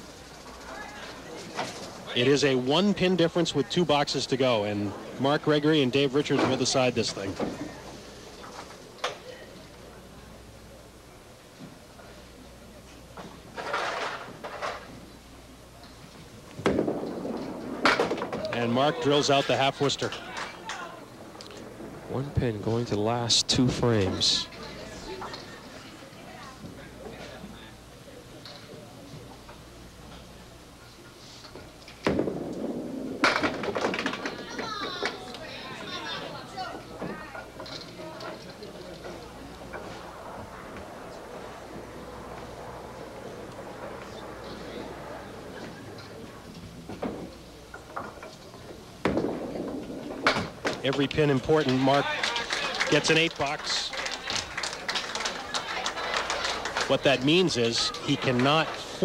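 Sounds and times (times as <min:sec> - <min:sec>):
bowling ball crashing into pins: 0:16.6 - 0:18.6, 0:32.0 - 0:35.2, 0:49.0 - 0:50.8
audience applauding: 0:51.5 - 0:58.9.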